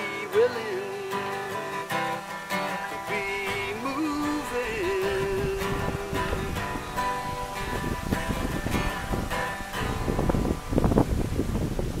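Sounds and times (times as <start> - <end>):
wind buffeting microphone: 3.1 - 12.0.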